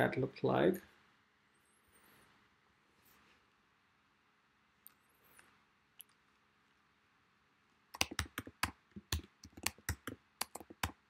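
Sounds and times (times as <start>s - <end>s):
typing on keyboard: 8.0s - 11.0s.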